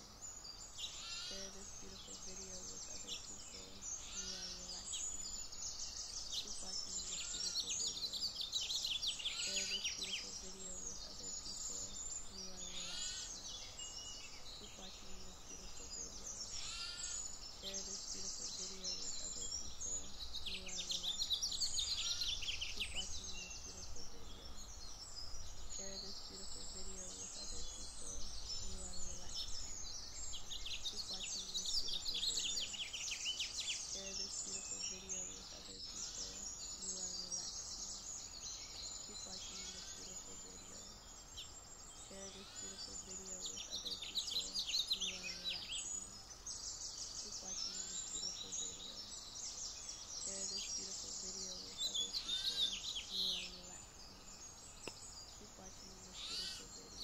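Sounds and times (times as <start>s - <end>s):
songbirds chirping and trilling: 0.0s - 57.0s.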